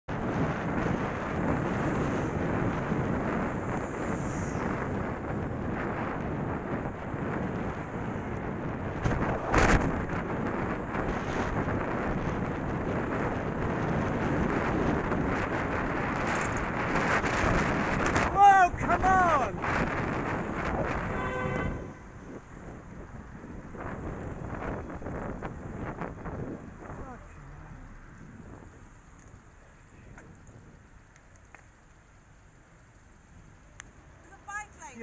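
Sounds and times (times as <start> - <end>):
wind buffeting microphone: 0.1 - 31.0
road and traffic noise: 0.1 - 35.0.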